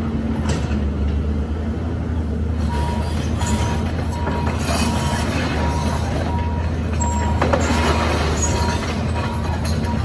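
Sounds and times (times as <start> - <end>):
excavator engine drone: 0.0 - 10.0
high beeping travel alarm: 2.6 - 7.6.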